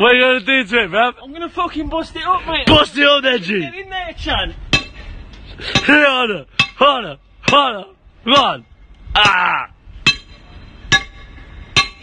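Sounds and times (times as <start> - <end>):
metal striking manhole cover: 4.7 - 12.0.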